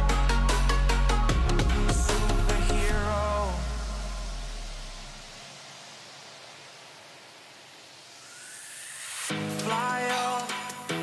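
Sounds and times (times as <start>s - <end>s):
white noise hiss: 0.0s - 11.0s
deep bass note: 1.2s - 5.2s.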